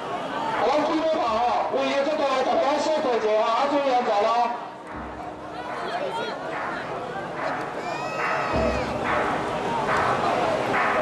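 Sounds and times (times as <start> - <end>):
crowd noise: 0.0 - 11.0
men talking and calling out: 0.0 - 11.0.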